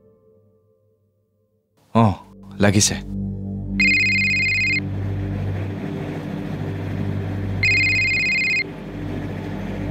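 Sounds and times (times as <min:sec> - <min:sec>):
telephone electronic ring: 0:03.8 - 0:04.8, 0:07.6 - 0:08.7
vehicle cabin hum: 0:03.8 - 0:09.9.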